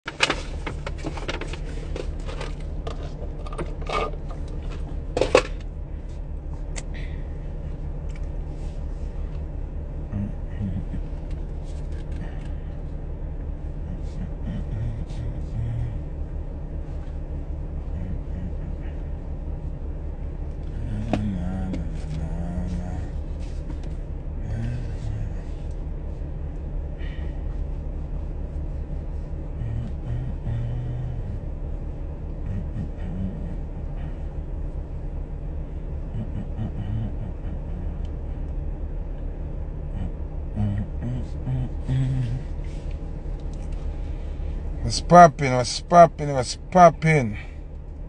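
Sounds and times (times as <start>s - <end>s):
sharp clicks and knocks: 0.1s - 5.7s
car cabin rumble: 0.1s - 48.0s.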